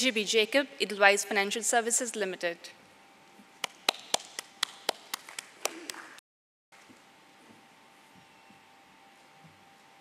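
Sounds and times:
slow applause: 3.6 - 6.2.

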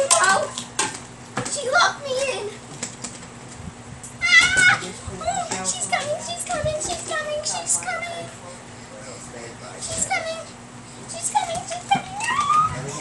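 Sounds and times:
child squealing: 4.2 - 4.9, 11.9 - 13.0.

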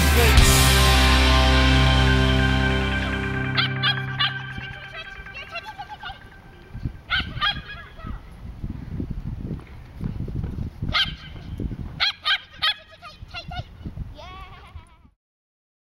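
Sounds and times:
wind rumble on microphone: 6.2 - 15.2
small dog barking excitedly: 10.9 - 11.4, 12.0 - 12.9.

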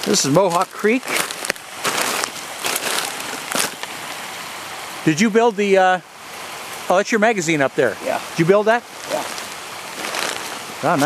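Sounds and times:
footsteps on leafy dirt trail: 0.0 - 4.0, 8.9 - 11.0
creek rushing: 0.0 - 11.0.

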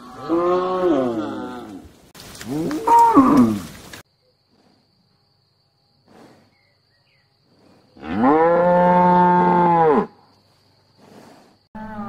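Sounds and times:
cow mooing: 0.0 - 1.8, 8.0 - 10.1, 11.8 - 12.0.

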